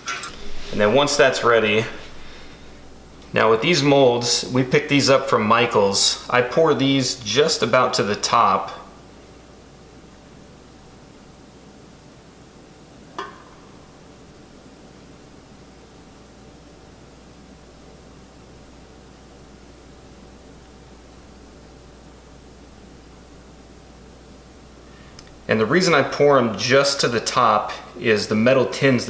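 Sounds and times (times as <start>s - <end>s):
room tone hiss with hum: 0.0s - 29.0s.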